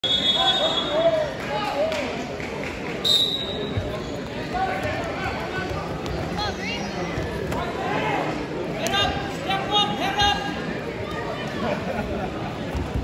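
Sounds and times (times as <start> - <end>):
high steady whistle tone: 0.0 - 1.0, 3.1 - 3.8
sharp whistle blast: 0.0 - 1.0, 3.0 - 3.7
spectators calling and chattering: 0.0 - 13.0.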